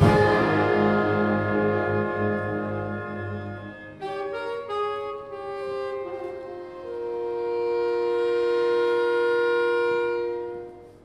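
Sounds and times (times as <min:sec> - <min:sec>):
orchestra wind instruments chord: 0:00.0 - 0:11.0.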